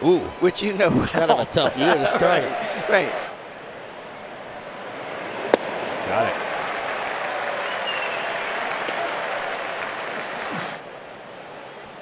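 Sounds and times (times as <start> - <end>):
ballpark crowd noise: 0.0 - 12.0
ball smacking into catcher's mitt: 5.5 - 5.8.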